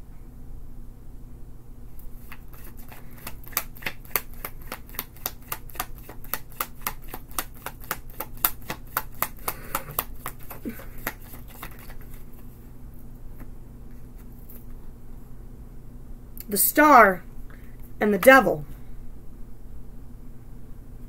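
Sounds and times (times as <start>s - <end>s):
cards being shuffled: 2.0s - 12.5s.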